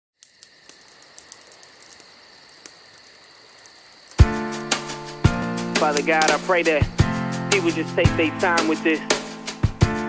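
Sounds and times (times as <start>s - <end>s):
small ticks: 0.2s - 5.0s
faint crickets chirping: 0.2s - 9.5s.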